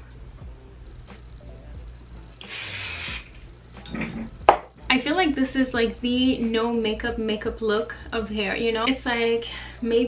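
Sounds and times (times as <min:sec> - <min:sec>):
aerosol hair spray hiss: 0:02.4 - 0:03.4.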